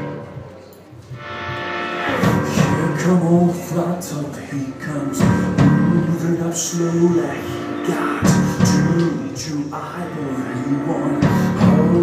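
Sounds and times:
live band playing: 0:00.0 - 0:12.0
drum hits: 0:02.1 - 0:03.1, 0:05.2 - 0:06.1.

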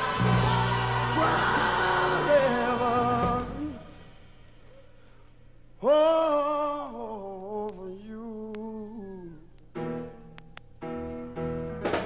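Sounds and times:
rock band chords: 0:00.0 - 0:04.4, 0:11.4 - 0:12.0.

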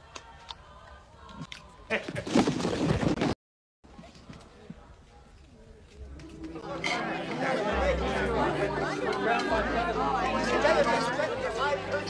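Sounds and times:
babble of voices: 0:06.3 - 0:12.0.

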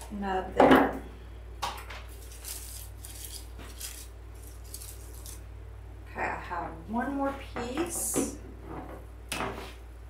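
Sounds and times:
steady low hum: 0:00.0 - 0:10.0
artificial stems rustling and clicking: 0:01.8 - 0:05.4.

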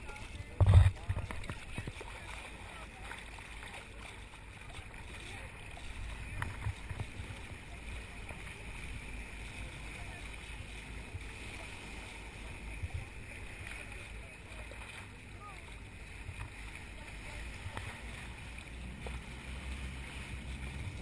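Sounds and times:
water rushing along boat hull: 0:00.0 - 0:21.0.

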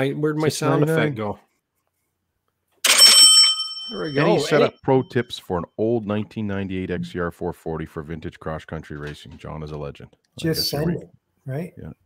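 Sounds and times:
bell ring sound effect: 0:02.9 - 0:04.8.

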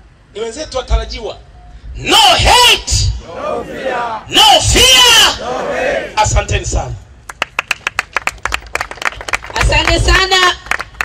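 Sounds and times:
crowd clapping: 0:07.2 - 0:11.0.

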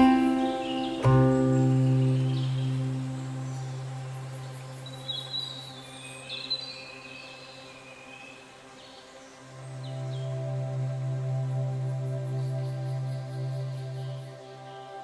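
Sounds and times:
bird chirps: 0:00.0 - 0:07.4
soft ambient music chords: 0:00.0 - 0:15.0.

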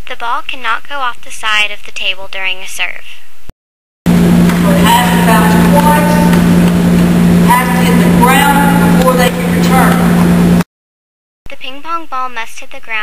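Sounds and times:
people talking: 0:00.0 - 0:03.1, 0:04.5 - 0:06.6, 0:07.4 - 0:10.2, 0:11.5 - 0:13.0
loud low hum: 0:04.1 - 0:10.7.

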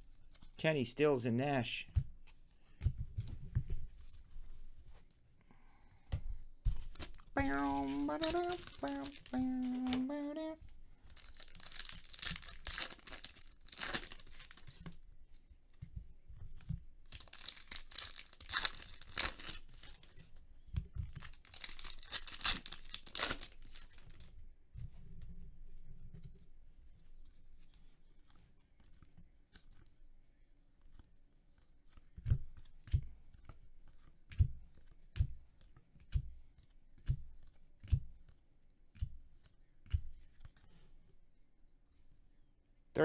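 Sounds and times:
card wrappers tearing and crinkling: 0:06.8 - 0:10.4, 0:11.1 - 0:14.9, 0:17.1 - 0:20.1, 0:21.1 - 0:24.1.

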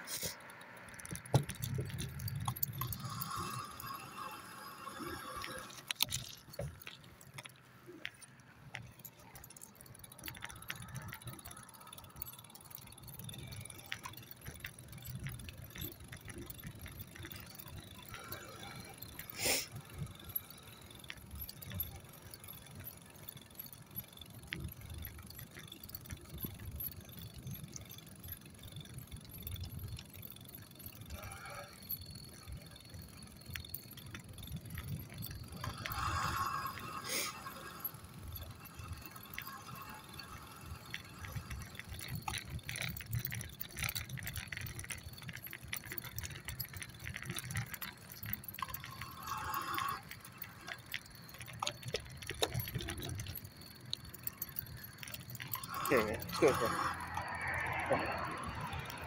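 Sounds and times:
rattling and jingling: 0:00.0 - 0:59.0
small wheels rolling on concrete: 0:00.0 - 0:59.0.

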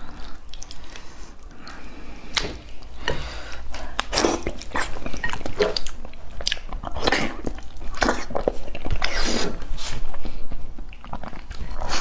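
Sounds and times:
chewing and eating: 0:00.0 - 0:12.0.

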